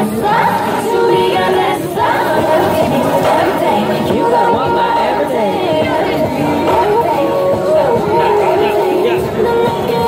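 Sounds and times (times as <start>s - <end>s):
crowd chattering: 0.0s - 10.0s
dance music through amplifier: 0.0s - 10.0s.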